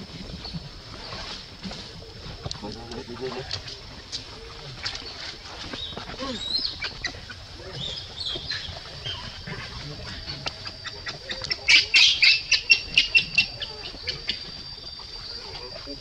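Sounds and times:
high insect whine: 0.0s - 16.0s
infant monkey squealing: 6.2s - 14.6s.

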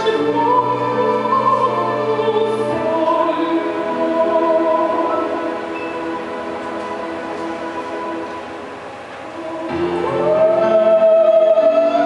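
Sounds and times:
choir holding sustained chord: 0.0s - 12.0s.

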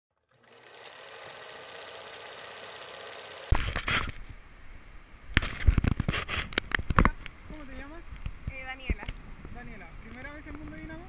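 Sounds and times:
fast mechanical rattle: 0.3s - 3.9s
camera handling bumps: 3.5s - 4.3s, 5.4s - 7.2s.

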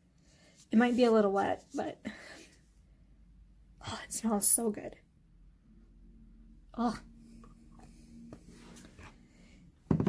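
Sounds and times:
soft scratchy rustles: 0.4s - 2.6s, 8.4s - 9.2s.

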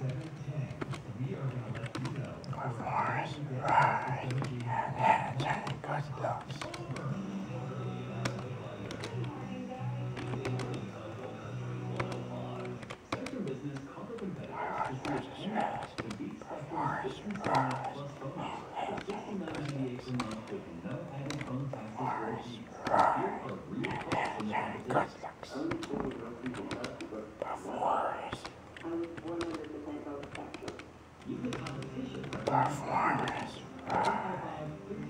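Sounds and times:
person talking low: 1.9s - 6.8s, 14.2s - 20.6s, 21.2s - 26.8s, 27.4s - 28.5s, 31.5s - 35.0s
indistinct radio voice: 2.5s - 6.6s, 14.2s - 20.5s, 21.4s - 28.5s, 31.5s - 34.9s.

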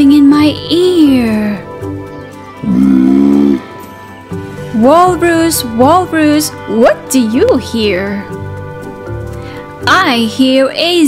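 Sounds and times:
soft background music: 0.0s - 11.0s
walrus bellow: 2.5s - 8.3s.

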